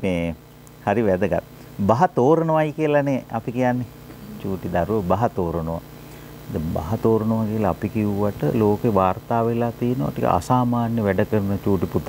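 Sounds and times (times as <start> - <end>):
man speaking: 0.0 - 5.9, 6.5 - 12.0.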